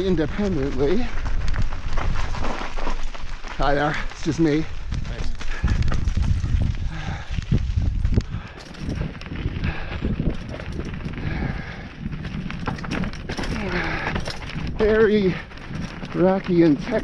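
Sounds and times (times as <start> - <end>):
bike rattling: 0.0 - 17.0
bike tyres rumbling over rocks: 0.0 - 17.0.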